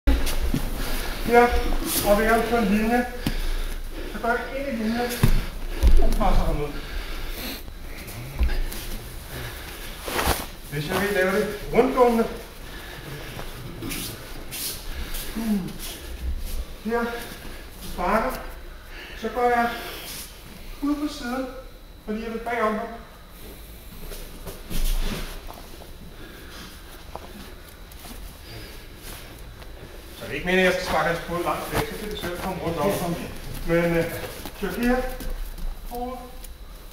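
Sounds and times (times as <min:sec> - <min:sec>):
person speaking: 0:00.1 - 0:07.1, 0:30.2 - 0:36.5
body thud on foam mat: 0:05.2 - 0:06.4.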